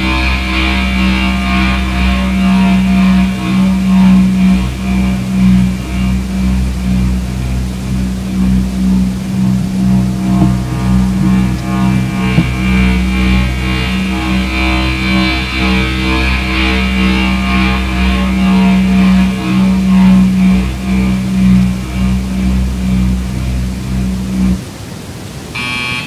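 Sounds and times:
high buzzing layer: 0.0s - 24.7s, 25.5s - 26.0s
rumbling bass: 0.0s - 24.8s
loud sustained low drone: 0.0s - 25.7s.

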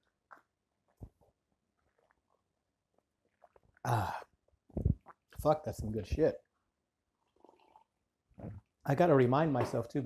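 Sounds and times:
man's throat sound: 3.9s - 5.0s.

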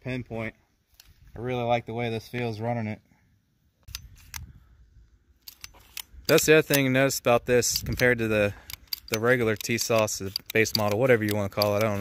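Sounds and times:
pistol slide metal clicks: 5.4s - 6.9s, 7.7s - 12.0s.

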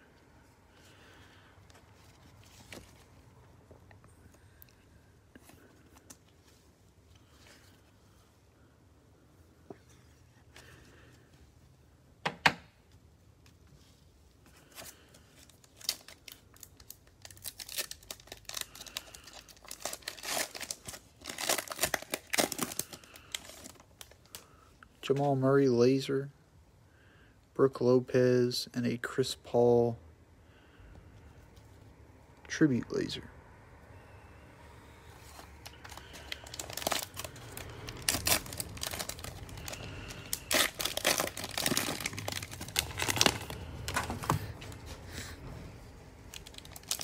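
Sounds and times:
plastic wrapper tearing and crinkling: 15.4s - 24.4s, 35.6s - 44.4s, 46.3s - 47.0s.

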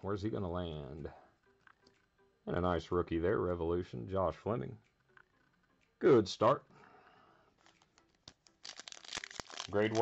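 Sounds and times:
foil wrapper tearing: 7.6s - 10.0s.

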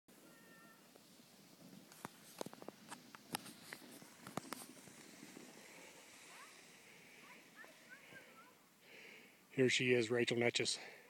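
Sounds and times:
faint steady hiss: 0.1s - 11.0s.

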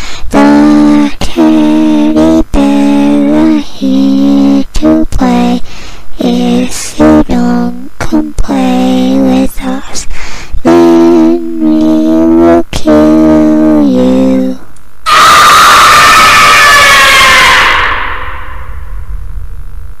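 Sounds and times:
harsh falling screech: 15.0s - 19.1s.

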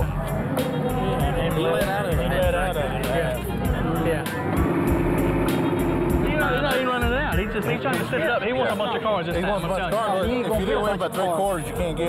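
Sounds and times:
race car engine running: 0.0s - 8.5s
background music with beat: 0.0s - 12.0s.

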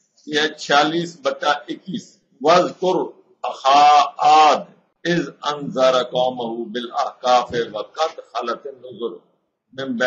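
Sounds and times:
man reciting in chant-like voice: 0.2s - 10.0s.

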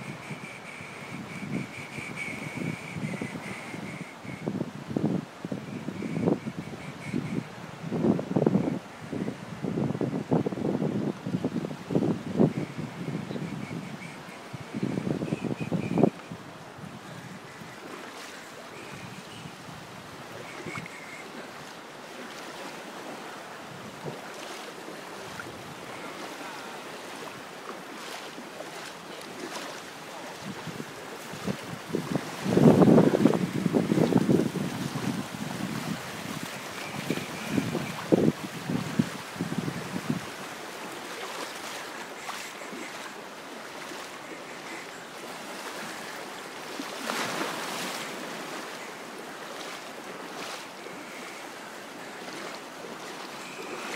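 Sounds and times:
wind on microphone: 0.0s - 21.8s, 23.0s - 24.6s, 30.3s - 40.6s.

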